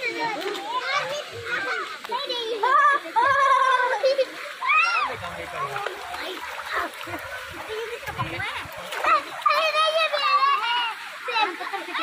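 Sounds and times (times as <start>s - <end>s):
child's high voice: 0.0s - 5.2s, 7.7s - 12.0s
children talking and calling out: 0.0s - 12.0s
splashing in shallow water: 0.0s - 12.0s.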